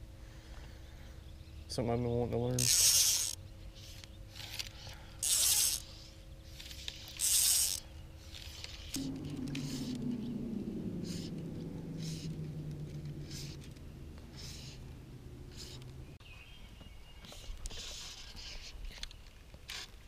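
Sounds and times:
electric trolling motor humming: 9.0s - 16.2s.

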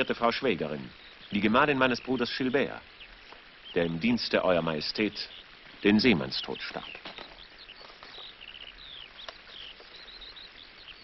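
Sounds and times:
faint background hiss: 0.0s - 11.0s
small birds chirping: 0.0s - 11.0s.

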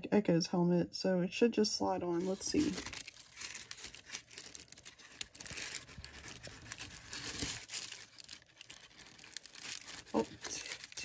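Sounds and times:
tissue paper crinkling: 2.1s - 11.0s.

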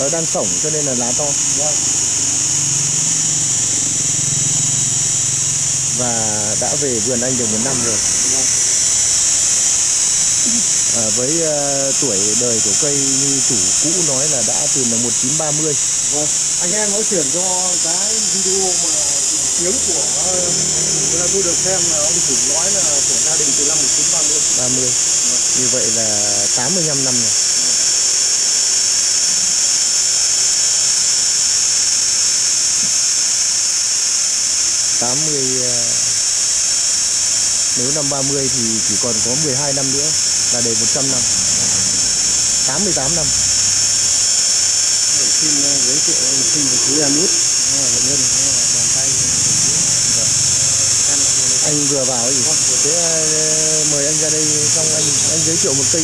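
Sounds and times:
high-pitched hiss: 0.0s - 56.0s
person speaking a word: 10.5s - 25.0s, 45.2s - 49.2s, 51.6s - 56.0s.

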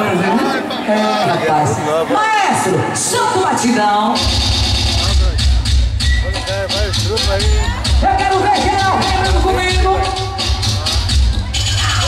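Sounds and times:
live band music over pa: 2.6s - 12.0s
heavy pulsing bass beat: 4.1s - 12.0s.

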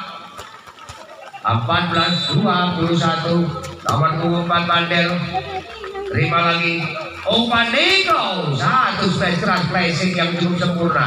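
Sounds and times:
man commentating: 1.3s - 11.0s.

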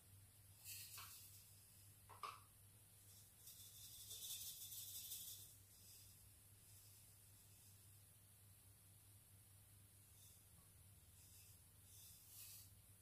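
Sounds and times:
sugar pouring hiss: 0.6s - 2.0s, 3.0s - 8.2s, 10.0s - 13.0s.

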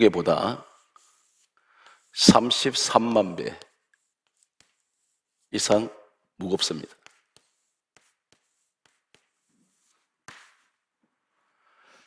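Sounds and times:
chalk tapping on blackboard: 0.0s - 5.8s, 6.4s - 11.2s.

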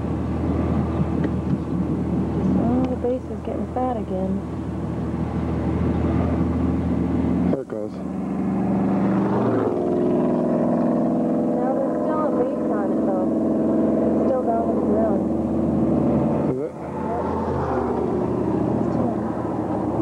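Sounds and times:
vehicle engine running: 0.0s - 20.0s.

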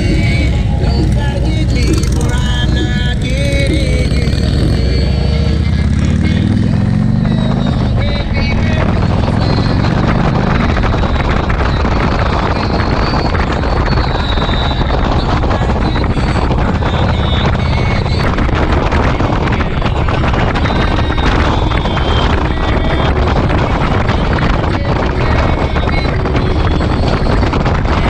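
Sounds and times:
motorcycle engine accelerating: 0.0s - 28.0s
music: 0.0s - 28.0s
wind rush on microphone: 0.0s - 28.0s.

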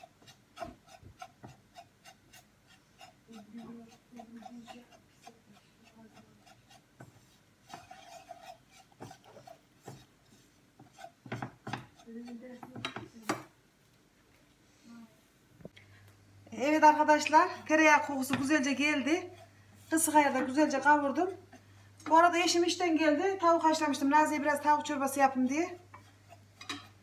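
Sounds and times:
whisk scraping in a pan: 0.0s - 13.0s, 18.0s - 21.7s, 23.7s - 27.0s
whisk knocking against pan: 0.0s - 13.5s, 18.0s - 19.3s.

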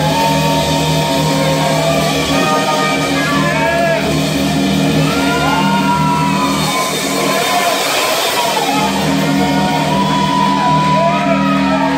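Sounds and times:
electric bass: 0.0s - 11.9s
electric guitar with bending notes: 0.0s - 11.9s.

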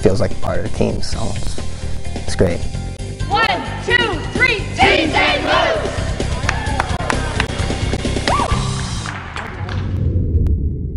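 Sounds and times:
background music: 0.0s - 10.1s
group shouting a team cheer: 3.3s - 7.4s.

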